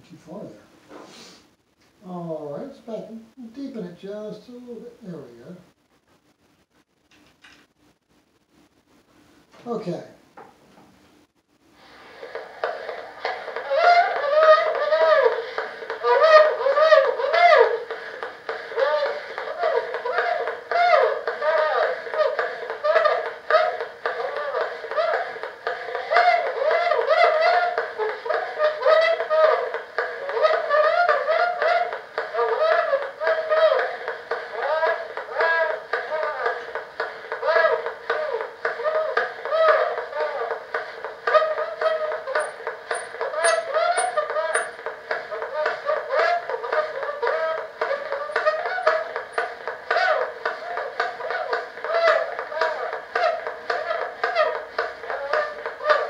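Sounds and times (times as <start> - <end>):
surface hiss: 0.9 - 1.6
tinny distorted voice: 34.5 - 36.8, 41.3 - 56.0.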